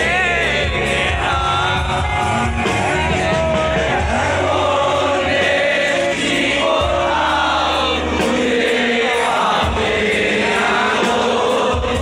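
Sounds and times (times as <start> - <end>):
amplified rock band music: 0.0 - 12.0
crowd singing along: 0.0 - 12.0.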